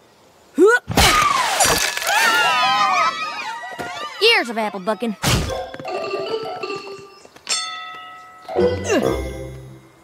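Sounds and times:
hooves trotting: 3.6 - 8.9.

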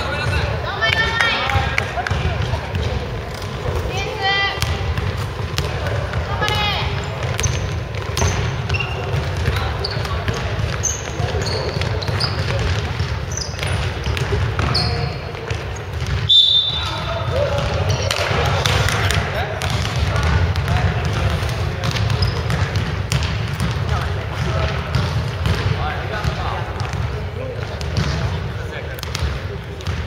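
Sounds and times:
sneakers squeaking: 0.0 - 30.0
basketball bouncing: 0.9 - 30.0.

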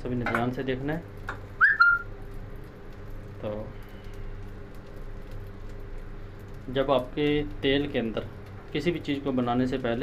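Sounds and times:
faint background hum: 0.0 - 10.0
high whistle-like chirp: 1.6 - 2.1.

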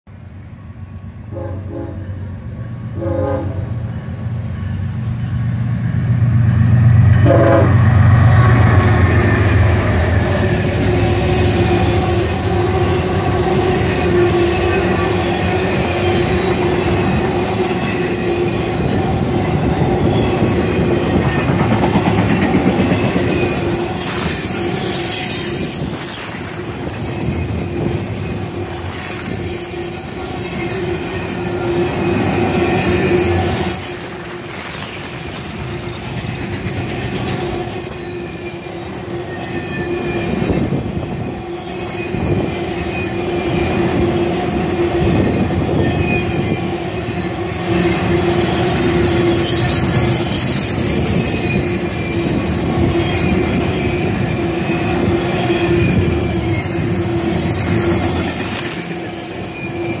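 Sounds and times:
freight train wheels rumbling: 0.1 - 60.0
wheels squealing: 8.4 - 60.0.

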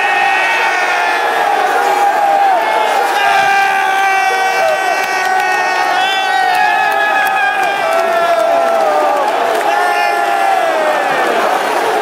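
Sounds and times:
crowd roar: 0.0 - 12.0
fans yelling: 0.0 - 12.0.

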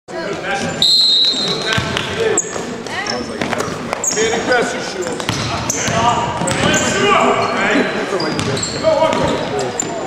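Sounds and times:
spectators' voices echoing: 0.1 - 10.0
high squeals: 6.7 - 10.0.

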